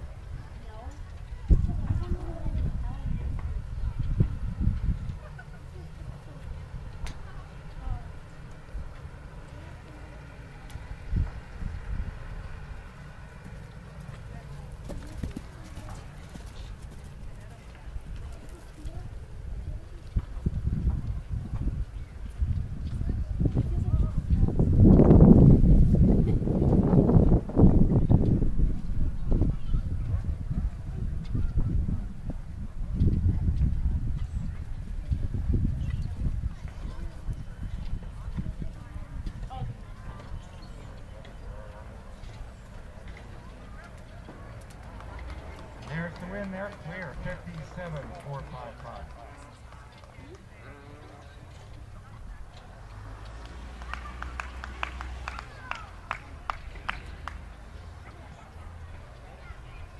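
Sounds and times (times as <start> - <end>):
horse hoofbeats on sand: 13.3 - 19.0.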